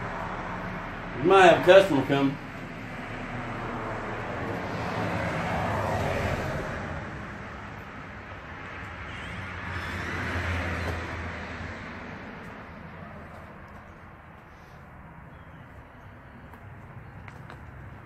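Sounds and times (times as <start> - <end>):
road traffic passing: 0.0 - 18.0.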